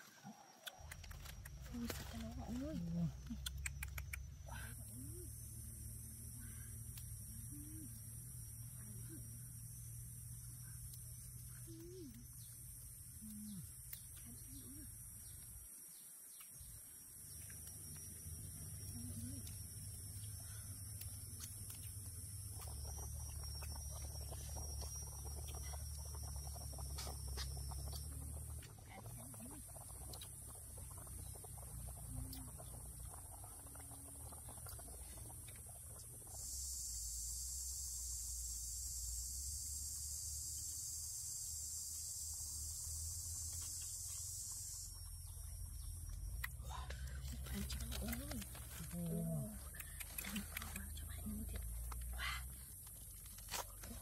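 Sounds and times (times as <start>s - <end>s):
insect chorus: 0.0s - 54.0s
insects buzzing: 0.0s - 54.0s.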